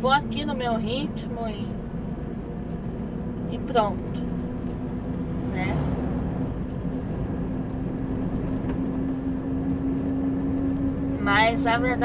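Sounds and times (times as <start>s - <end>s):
diesel truck engine humming: 0.0s - 12.0s
road and tyre noise: 0.0s - 12.0s.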